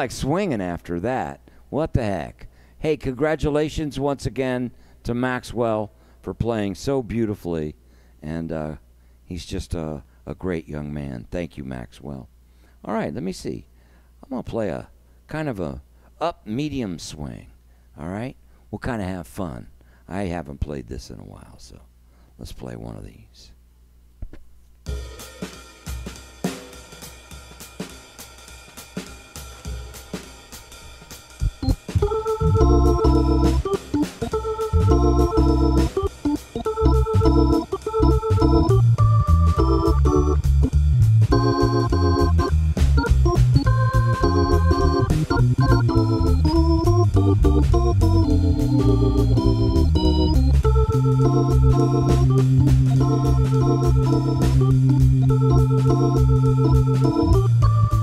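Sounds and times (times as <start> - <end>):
organ playing swing: 31.4 - 58.0.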